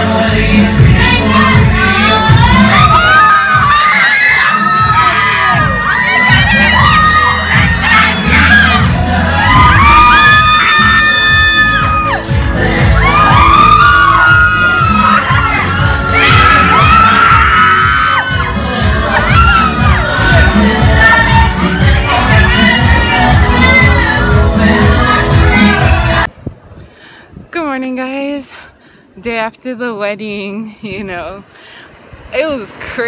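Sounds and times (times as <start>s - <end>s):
loud dance music with bass beat: 0.0s - 26.3s
crowd shouting and cheering: 0.3s - 26.3s.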